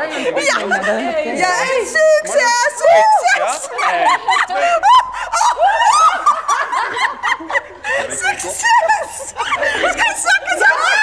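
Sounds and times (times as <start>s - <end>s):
women talking: 0.0s - 3.8s, 7.8s - 11.0s
women laughing: 0.0s - 11.0s.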